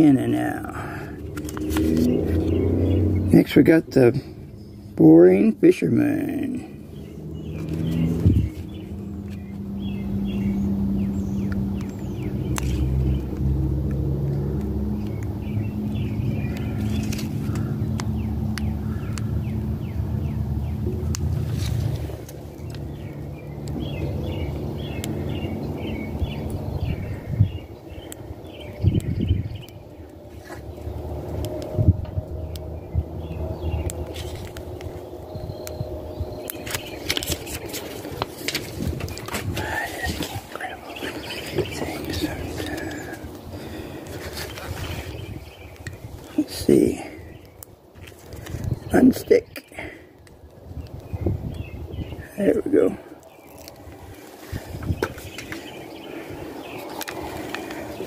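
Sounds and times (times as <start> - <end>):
low motor rumble: 0.0 - 49.1, 49.7 - 58.0
small birds chirping: 0.0 - 58.0.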